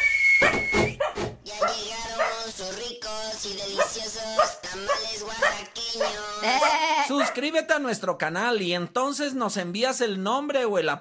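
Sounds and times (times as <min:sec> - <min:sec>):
dog-like animal barks: 0:00.4 - 0:02.5, 0:03.8 - 0:07.4.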